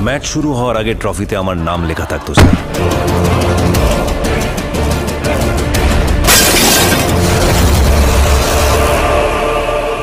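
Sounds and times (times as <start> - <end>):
dramatic trailer music with bass: 0.0 - 10.0.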